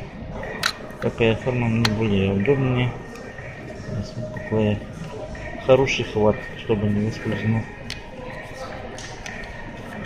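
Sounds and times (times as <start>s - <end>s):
faint voices: 0.0s - 10.0s
shop background: 0.0s - 10.0s.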